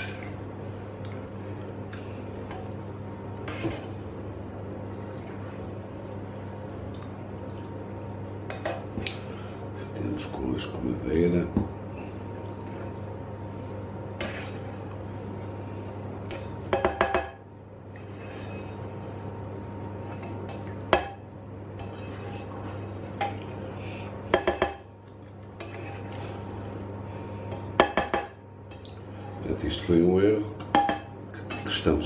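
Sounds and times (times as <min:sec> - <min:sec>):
steady low hum: 0:00.0 - 0:32.0
metal skimmer scraping frying pan: 0:25.6 - 0:26.6.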